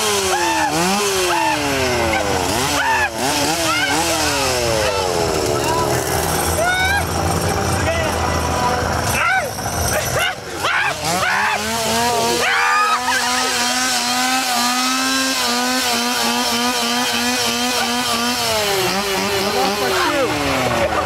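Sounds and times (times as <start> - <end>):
people shrieking: 0.0 - 8.4, 9.0 - 14.9
small engine revving: 0.0 - 21.0.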